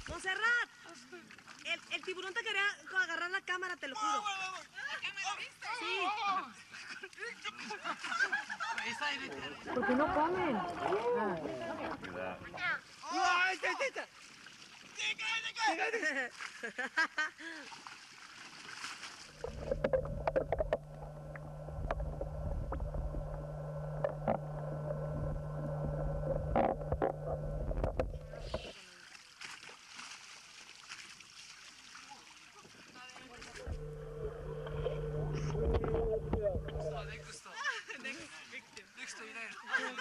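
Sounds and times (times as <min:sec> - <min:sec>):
boat engine running: 0:19.3 - 0:28.7, 0:33.4 - 0:37.3.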